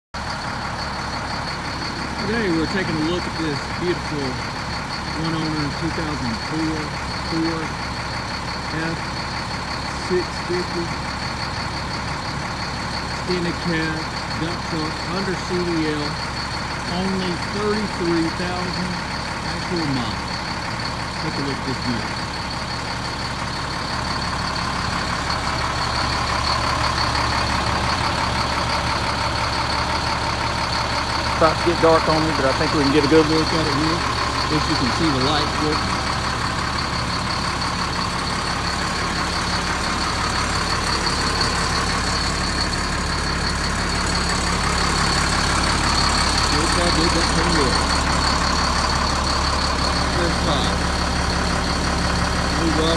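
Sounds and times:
truck engine idling: 0:00.2 - 0:52.9.

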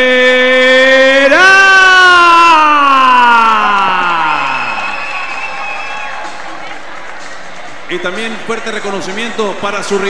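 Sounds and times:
crowd cheering: 0:01.3 - 0:10.0.

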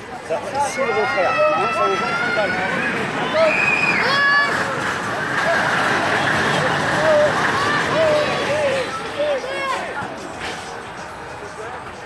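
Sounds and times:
roller coaster cars rolling: 0:00.0 - 0:12.0
voices: 0:00.0 - 0:12.0.

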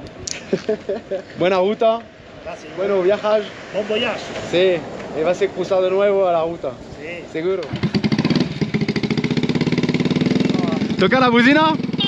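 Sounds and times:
motorcycle engine idling: 0:07.6 - 0:12.0.

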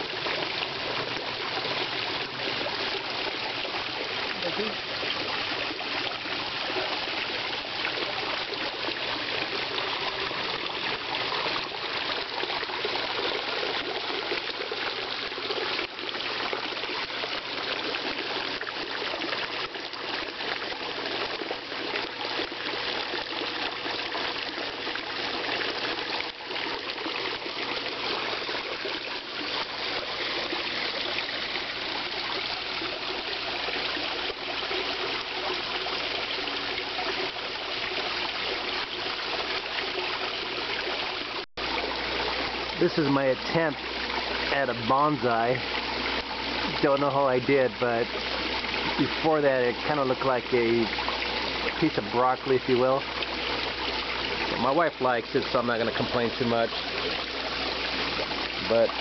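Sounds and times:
water trickling and splashing: 0:00.0 - 0:59.0.

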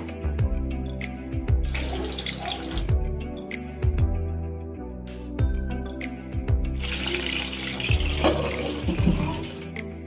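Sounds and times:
background music: 0:00.0 - 0:10.0
food sizzling in hot oil: 0:06.8 - 0:09.6.

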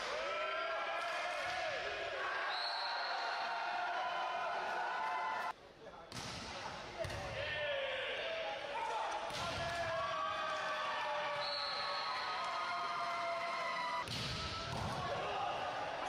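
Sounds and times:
volleyball hits echoing: 0:14.0 - 0:15.4.

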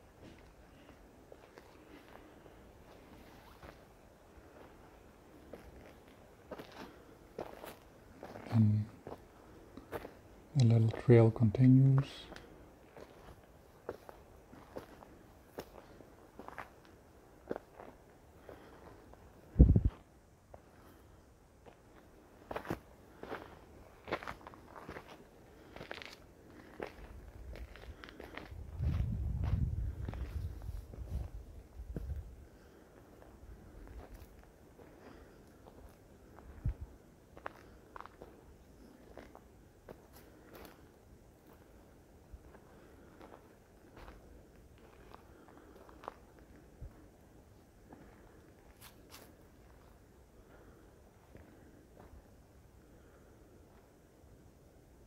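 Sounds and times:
footsteps crunching on dirt trail: 0:00.0 - 0:11.1, 0:11.7 - 0:21.0, 0:21.6 - 0:52.4
low rumble on microphone: 0:19.5 - 0:20.0, 0:27.2 - 0:32.4.

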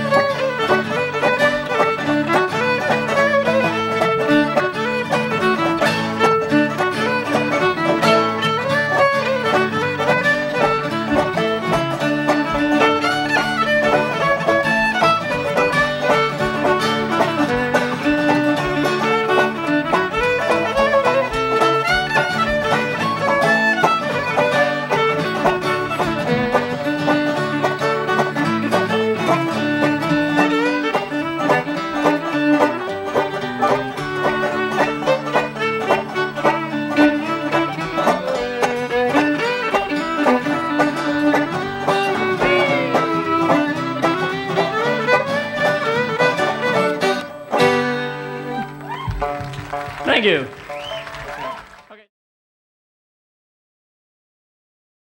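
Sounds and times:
banjo and acoustic guitar: 0:00.0 - 0:51.6
fiddle melody: 0:00.0 - 0:52.0.

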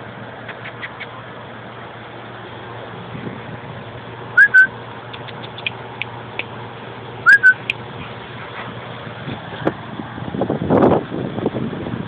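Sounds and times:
person whistling: 0:04.4 - 0:04.7, 0:07.3 - 0:07.7.

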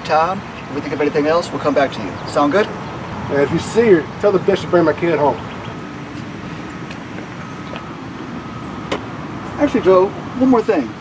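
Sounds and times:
motor vehicle engine rumbling: 0:00.0 - 0:11.0.

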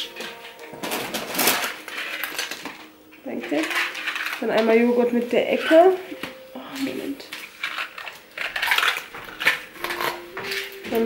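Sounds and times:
grocery packaging rustling: 0:00.0 - 0:11.0.

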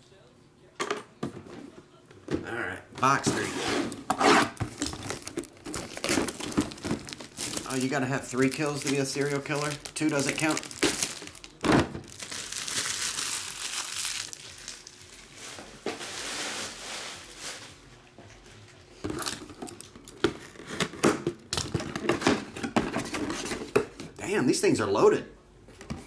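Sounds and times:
cardboard box clicks and rustles: 0:04.6 - 0:13.0
plastic shrink-wrap crinkling: 0:04.6 - 0:17.9.

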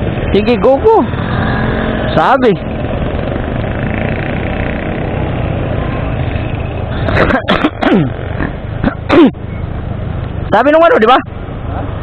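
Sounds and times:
motorcycle engine running: 0:00.0 - 0:06.7
wind and road noise: 0:00.0 - 0:12.0.

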